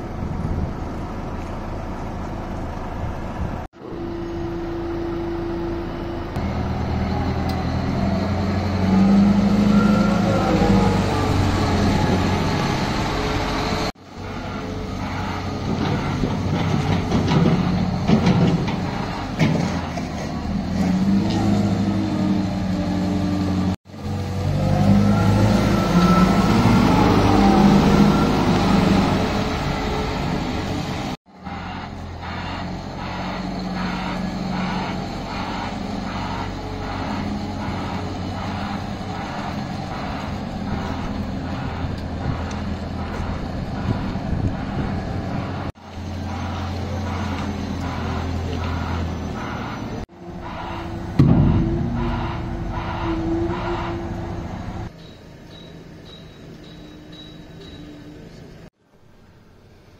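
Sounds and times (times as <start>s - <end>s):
wheel loader diesel engine: 0.0s - 59.9s
pulsing reversing alarm: 3.8s - 19.4s, 31.4s - 58.3s.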